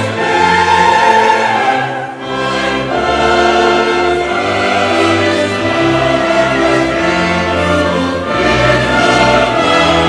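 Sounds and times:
choir singing with orchestra: 0.0s - 10.0s.

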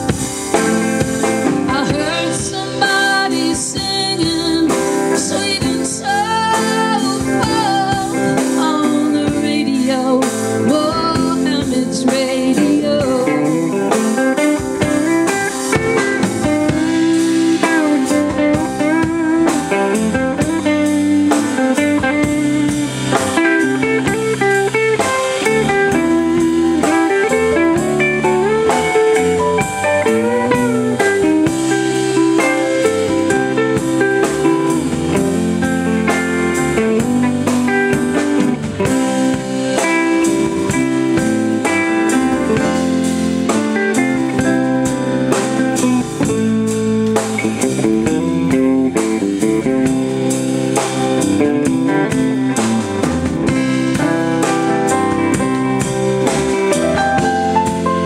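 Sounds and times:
blues band playing: 0.0s - 58.0s
electric guitar lead with bends: 0.0s - 58.0s.

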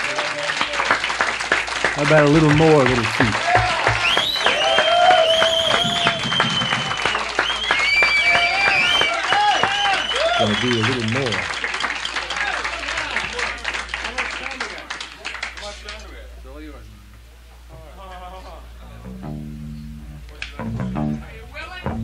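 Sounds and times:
audience clapping and cheering: 0.0s - 16.2s
shrill whistles: 3.8s - 10.8s.

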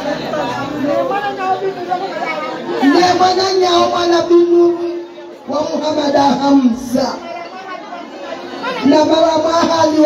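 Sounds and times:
women chattering: 0.0s - 3.4s, 7.1s - 9.4s.

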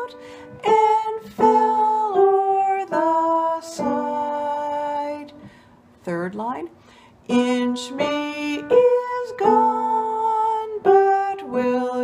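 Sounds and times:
grand piano melody: 0.0s - 5.6s, 7.3s - 12.0s.

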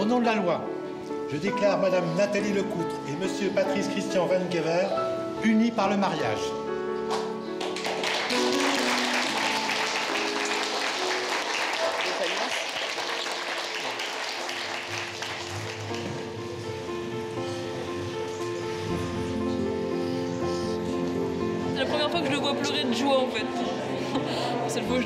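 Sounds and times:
background music: 0.0s - 25.0s
guests applauding: 7.1s - 16.4s.

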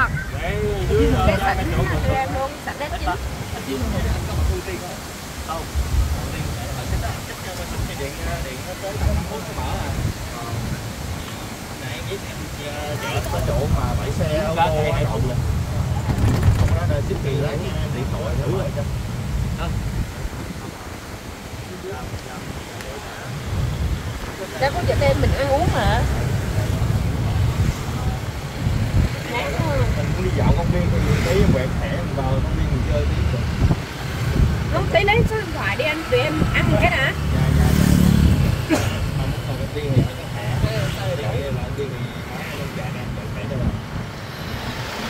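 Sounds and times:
wind buffeting microphone: 0.0s - 42.0s
low rumble of road noise: 0.0s - 45.0s
motorbike and traffic noise: 0.0s - 45.0s
people talking and laughing: 0.0s - 45.0s.

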